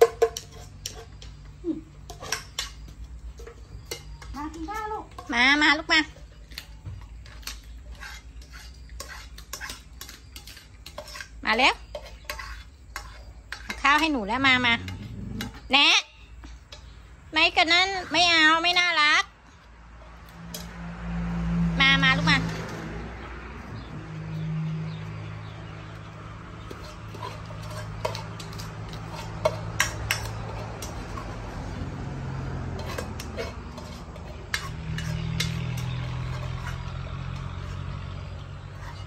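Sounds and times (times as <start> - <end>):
clicks against metal dishes: 0.0 - 1.4, 26.7 - 31.6, 32.7 - 37.4
metal spoon scraping steel bowl: 0.0 - 21.0, 21.7 - 39.0.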